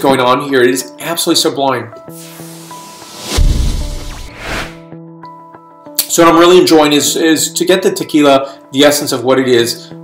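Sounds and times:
soft background music: 0:00.0 - 0:10.0
whoosh: 0:02.2 - 0:04.8
deep boom: 0:03.2 - 0:04.4.

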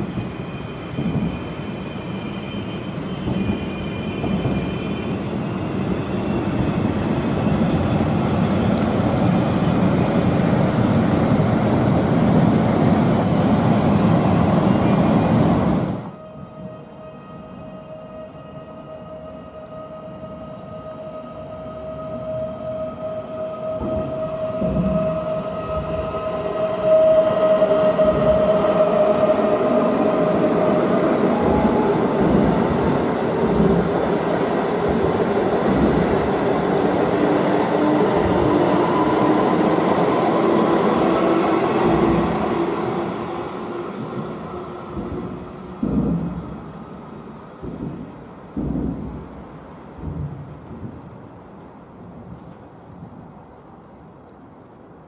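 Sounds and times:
train wheels rolling on rails: 0:00.0 - 0:16.8, 0:21.2 - 0:55.0
electric train whine: 0:00.0 - 0:52.6
wheels thumping over rail joints: 0:44.9 - 0:46.7.

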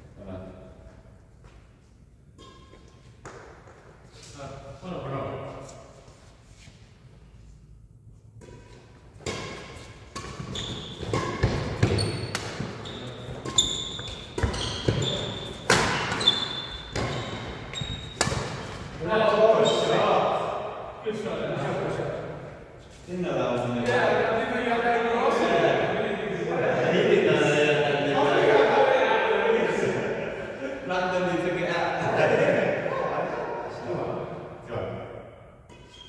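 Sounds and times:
men talking: 0:04.2 - 0:05.7, 0:19.0 - 0:35.1
rackets hitting shuttlecock: 0:08.4 - 0:19.0
shoes squeaking on wooden floor: 0:10.4 - 0:18.7.

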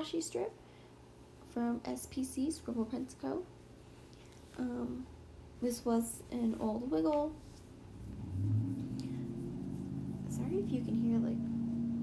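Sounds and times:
car engine drone passing: 0:07.8 - 0:12.0.

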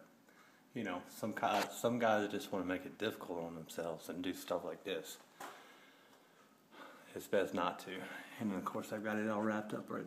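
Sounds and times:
faint room hiss: 0:00.0 - 0:10.0
short breath: 0:05.4 - 0:07.1.

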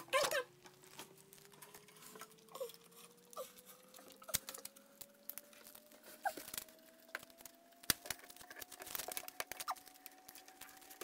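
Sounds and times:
foil wrapper crinkling: 0:00.6 - 0:11.0.

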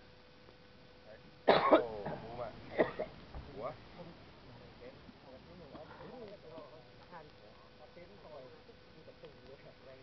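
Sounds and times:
person coughing: 0:01.5 - 0:03.1.

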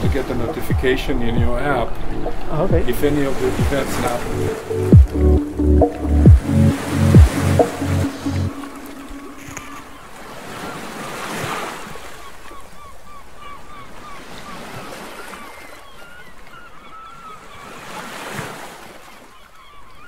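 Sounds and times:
waves washing: 0:00.0 - 0:15.8
birds calling: 0:00.0 - 0:20.0.

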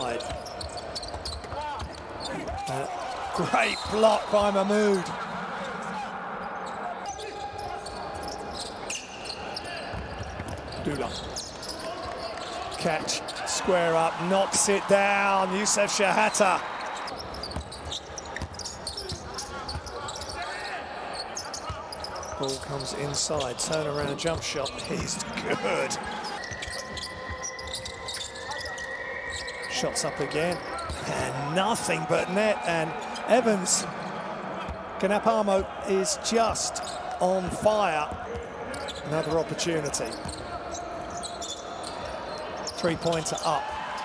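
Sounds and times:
shoe squeaks: 0:00.0 - 0:04.3, 0:06.6 - 0:13.7, 0:16.9 - 0:31.1, 0:36.8 - 0:37.2, 0:38.3 - 0:44.0
voices in a hall: 0:00.0 - 0:44.0.

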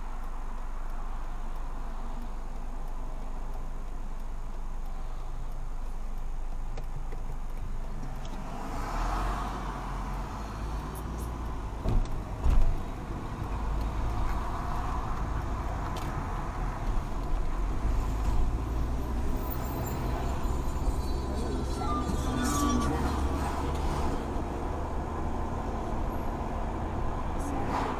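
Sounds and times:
car engine accelerating: 0:06.5 - 0:27.9.

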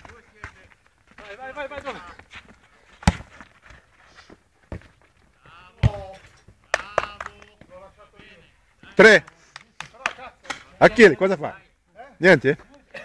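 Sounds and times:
football being kicked: 0:03.0 - 0:03.5, 0:05.7 - 0:07.3.

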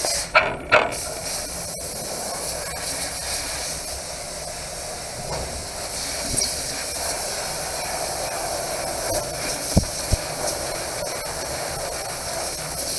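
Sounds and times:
laser cutter hissing: 0:01.0 - 0:12.9.

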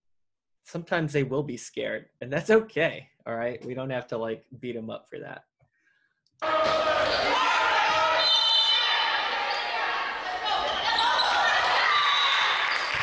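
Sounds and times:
people shouting and cheering: 0:06.4 - 0:13.0.

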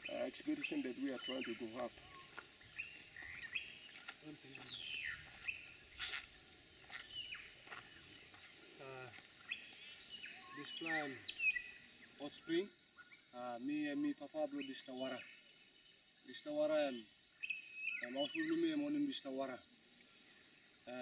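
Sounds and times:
birds whistling: 0:00.0 - 0:08.7, 0:09.4 - 0:13.3, 0:17.4 - 0:18.8.

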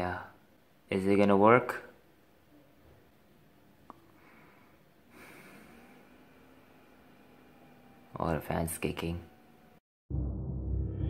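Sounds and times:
low hum: 0:09.2 - 0:11.0.

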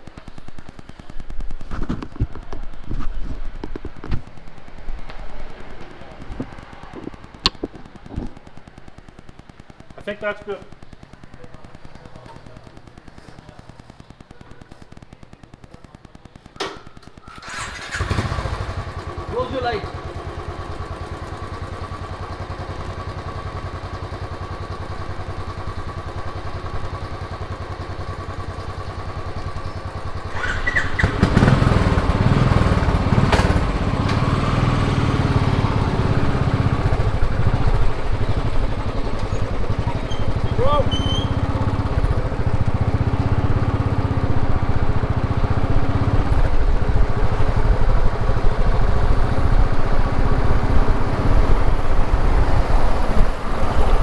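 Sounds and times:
motorcycle engine: 0:00.0 - 0:54.0.

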